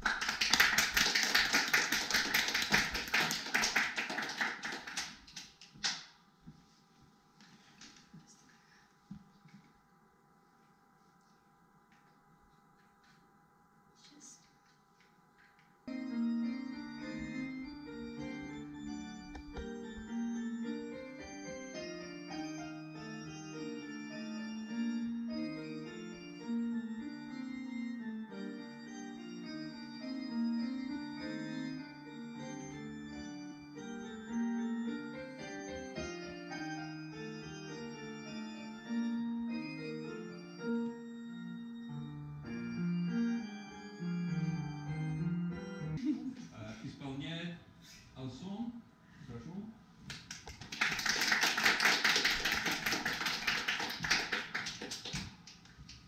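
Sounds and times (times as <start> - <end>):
solo digital piano piece: 15.9 - 46.0.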